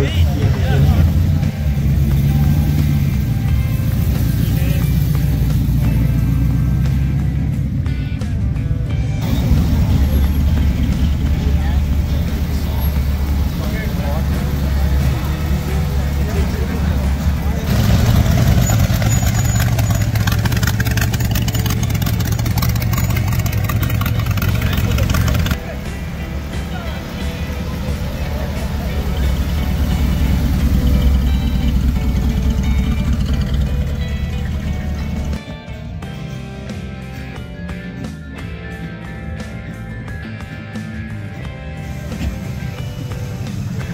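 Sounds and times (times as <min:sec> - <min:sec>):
car engines revving: 0:00.0 - 0:35.4, 0:38.0 - 0:43.9
music playing: 0:00.0 - 0:43.9.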